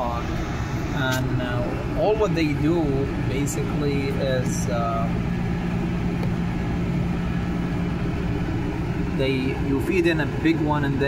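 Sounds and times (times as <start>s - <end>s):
air conditioning fan whoosh: 0.0s - 11.0s
low machinery hum: 0.0s - 11.0s.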